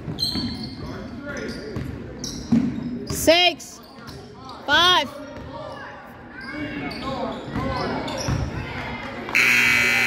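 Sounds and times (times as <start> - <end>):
scoreboard buzzer: 9.4 - 10.0.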